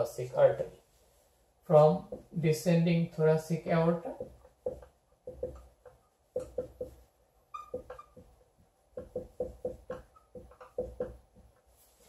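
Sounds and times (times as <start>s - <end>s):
marker writing on whiteboard: 2.0s - 2.4s, 4.1s - 11.7s
marker tip squeaks: 7.5s - 8.3s.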